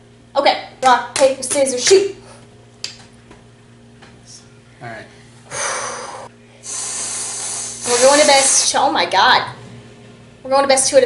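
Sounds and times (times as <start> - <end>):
whipped cream can spraying: 6.7 - 8.7.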